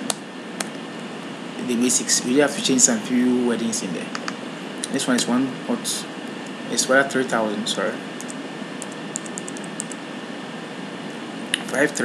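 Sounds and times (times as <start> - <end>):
steady background hiss: 0.0 - 12.0
computer keyboard keystrokes: 8.2 - 10.0.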